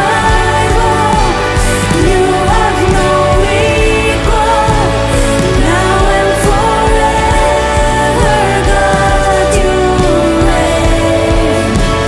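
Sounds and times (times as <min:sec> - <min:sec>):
acoustic guitar: 0:00.0 - 0:12.0
bass guitar: 0:00.0 - 0:12.0
electric guitar: 0:00.0 - 0:12.0
keyboard: 0:00.0 - 0:12.0
women singing together: 0:00.0 - 0:12.0.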